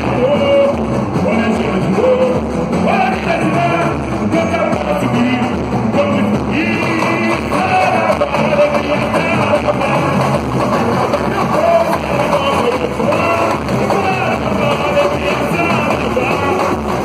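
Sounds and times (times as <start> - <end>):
lead singer and chorus singing: 0.0 - 17.0
samba percussion: 0.0 - 17.0.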